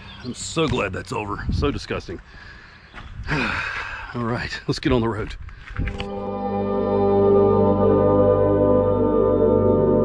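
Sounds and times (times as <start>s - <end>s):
quiet breathing: 2.2s - 4.2s
man sighing: 3.2s - 4.2s.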